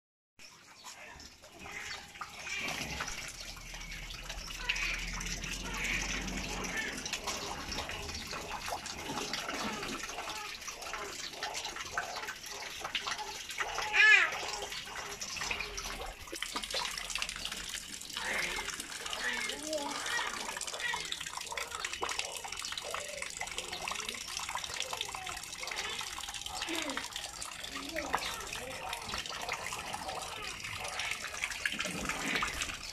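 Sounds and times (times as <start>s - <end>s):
water splashing and pouring: 0.4s - 32.9s
child's wordless voice: 18.3s - 30.7s.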